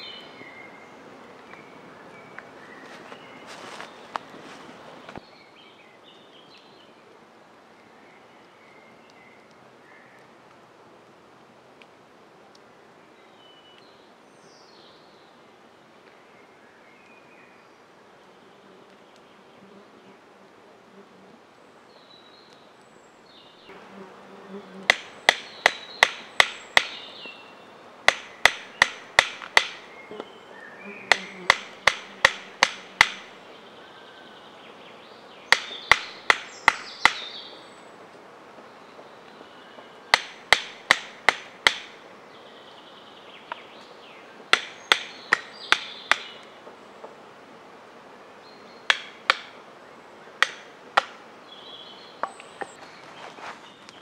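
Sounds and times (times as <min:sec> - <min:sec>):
baton knocking on blade in wood: 0:28.1 - 0:29.8.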